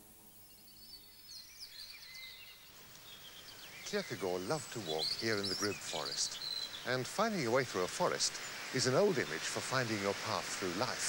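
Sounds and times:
faint birdsong chirps: 0.0s - 11.0s.

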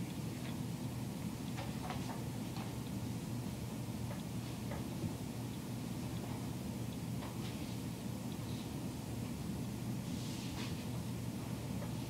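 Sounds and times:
steady low hum: 0.0s - 12.0s
faint clicks and ticks: 3.9s - 7.5s.

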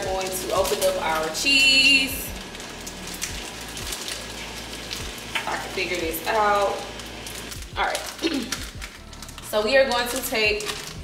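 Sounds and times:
food sizzling in a pan: 0.0s - 9.4s.

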